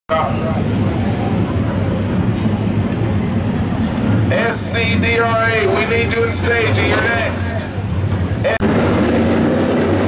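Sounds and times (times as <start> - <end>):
crowd chatter: 0.1 - 8.7
race car engines rumbling: 0.1 - 10.0.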